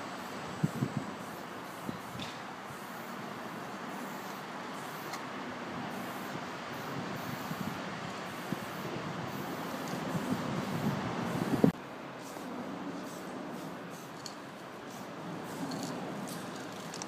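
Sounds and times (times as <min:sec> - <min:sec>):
rumbling vehicle noise: 0:00.0 - 0:17.0.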